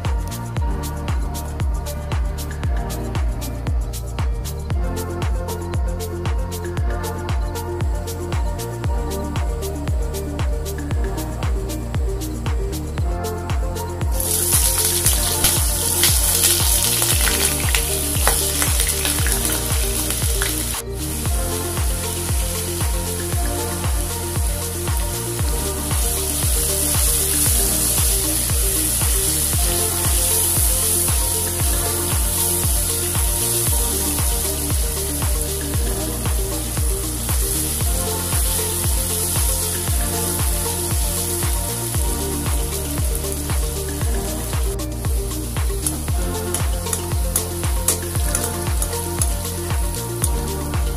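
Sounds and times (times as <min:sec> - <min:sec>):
background music with steady beat: 0:00.0 - 0:50.9
potatoes sizzling in hot oil: 0:14.2 - 0:44.5.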